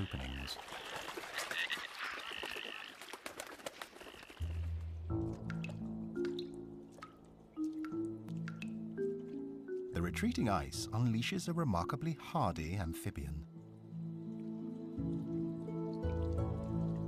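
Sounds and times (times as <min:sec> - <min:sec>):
ducks splashing and wingbeats: 0:00.0 - 0:05.0
background music: 0:04.4 - 0:17.0.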